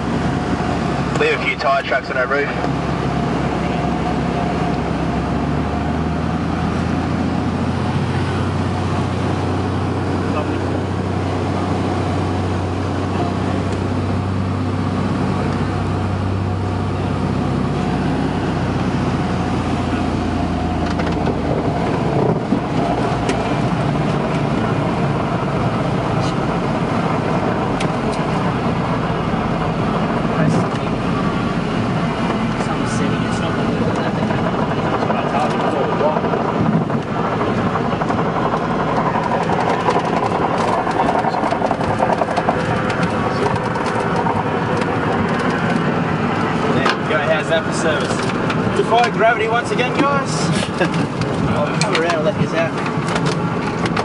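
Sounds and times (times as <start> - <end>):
propeller plane engine hum: 0.0 - 54.0
rushing rumble: 0.0 - 54.0
knocks and rattles: 34.2 - 45.9.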